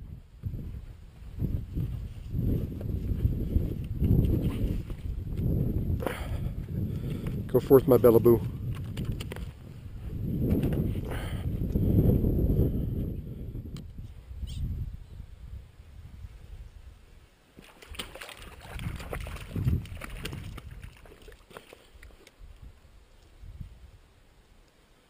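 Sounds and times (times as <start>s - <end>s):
water sloshing and splashing: 17.6s - 22.4s.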